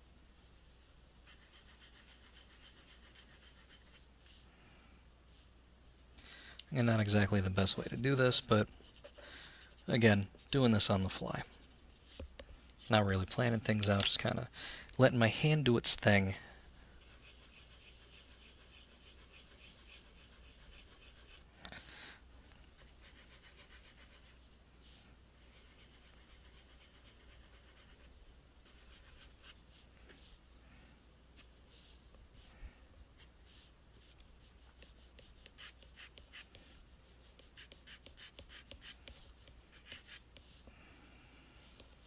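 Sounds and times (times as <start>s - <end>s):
pencil rub on paper: 1.2s - 4.4s, 8.8s - 10.8s, 17.0s - 21.5s, 22.8s - 30.4s, 31.4s - 32.5s, 33.2s - 40.6s
pencil scratching on paper: 1.2s - 4.4s, 7.6s - 12.3s, 17.0s - 21.5s, 22.8s - 30.4s, 33.2s - 40.6s, 41.6s - 42.0s.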